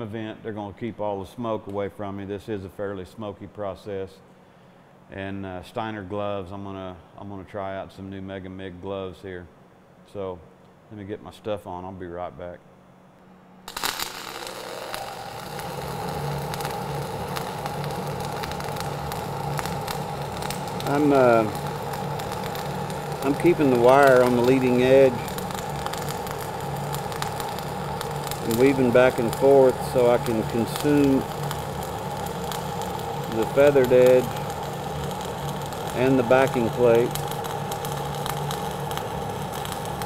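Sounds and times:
low steady hum: 0.0s - 40.0s
welding arc crackling and popping: 13.6s - 40.0s.

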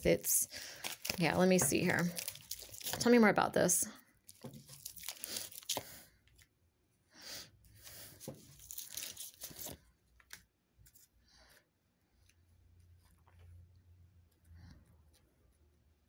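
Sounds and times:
cards being shuffled: 0.8s - 3.2s, 4.3s - 6.0s, 7.8s - 11.0s.

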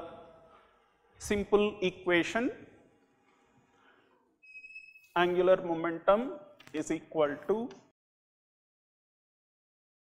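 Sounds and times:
high-pitched chalk squeak: 4.4s - 5.5s.

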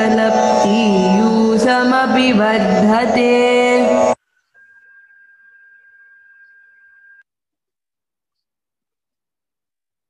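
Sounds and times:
person chanting verse: 0.0s - 4.2s
faint steady high tone: 0.0s - 7.3s.

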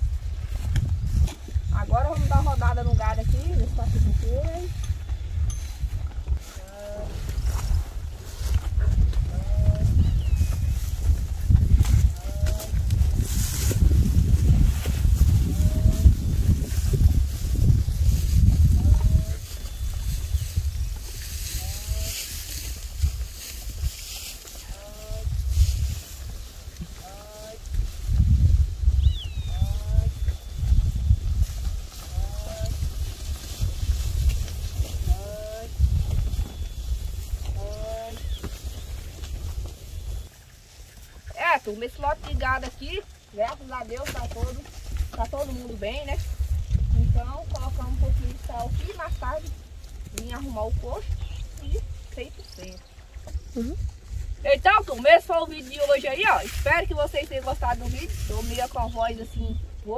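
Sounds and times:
wind buffeting microphone: 0.0s - 59.9s
cattle mooing: 32.1s - 32.8s.

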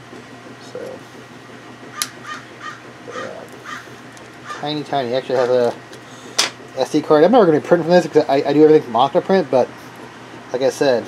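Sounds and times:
bird calling: 1.9s - 4.9s.

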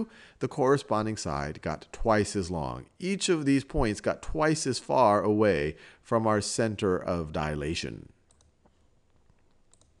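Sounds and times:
faint computer mouse clicks: 9.3s - 10.0s.

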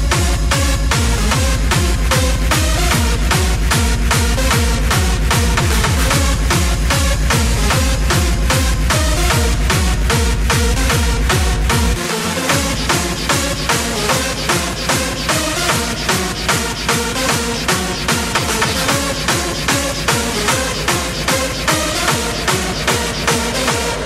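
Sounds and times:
bassline: 0.0s - 24.0s
four-on-the-floor kick drum: 0.0s - 24.0s
repeating synth riff: 1.1s - 24.0s
ticking hi-hats: 1.1s - 24.0s.

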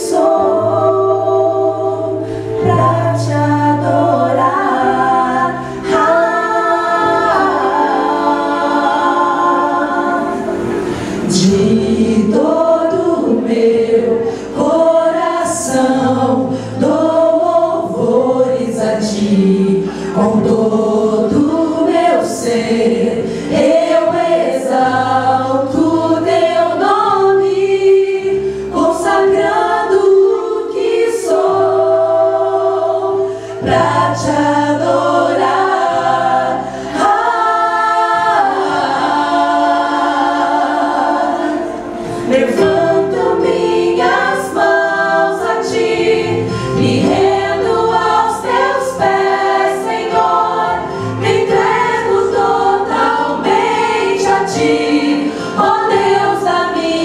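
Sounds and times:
women singing in harmony: 0.0s - 57.0s.

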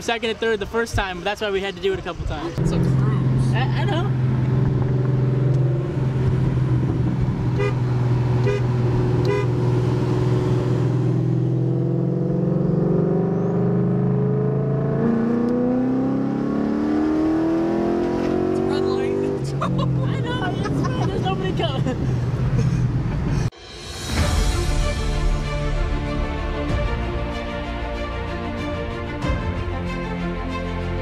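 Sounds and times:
car engine accelerating: 2.6s - 23.5s.

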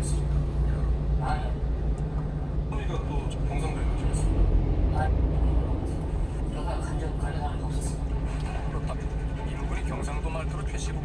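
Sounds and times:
truck engine idling: 0.0s - 11.0s
faint broadcast voices: 2.2s - 11.0s.

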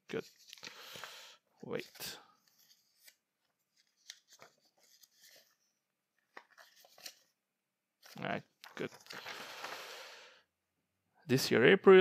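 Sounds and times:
small clicks of papers: 0.3s - 1.1s
papers rustling: 1.7s - 5.6s, 6.2s - 7.3s, 8.0s - 10.0s.

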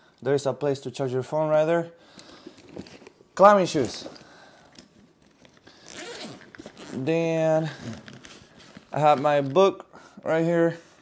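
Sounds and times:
backpack zipper being pulled: 5.8s - 8.4s.

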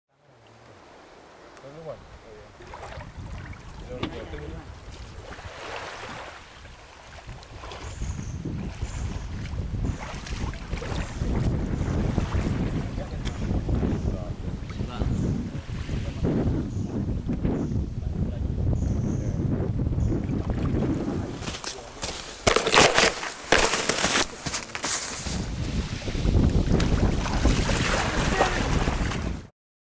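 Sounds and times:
wind buffeting microphone: 1.8s - 23.0s, 25.1s - 29.5s
camera knocks and scrapes: 21.4s - 25.5s.

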